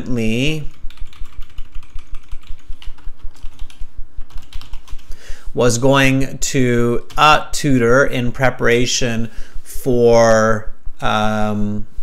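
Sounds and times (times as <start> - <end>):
keyboard typing clicks: 0.8 - 5.0.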